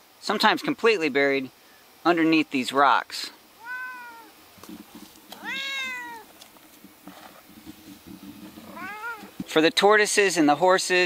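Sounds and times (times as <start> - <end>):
cat meowing: 3.6 - 4.4, 5.4 - 6.3, 8.6 - 9.4.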